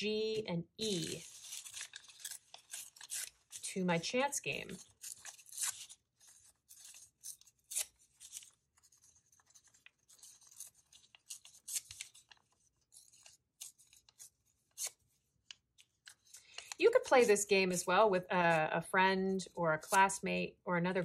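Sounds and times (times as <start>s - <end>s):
paper ripping and crinkling: 0.3s - 3.8s, 4.5s - 15.1s.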